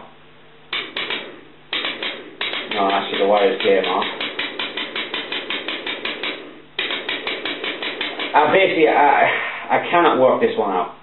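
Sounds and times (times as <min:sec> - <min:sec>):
power supply clicking rapidly: 0:00.7 - 0:09.0.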